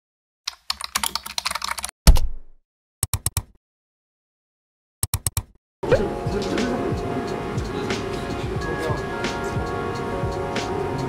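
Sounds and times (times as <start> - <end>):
computer keyboard typing: 0.5 - 1.9, 3.0 - 3.5, 5.0 - 5.5.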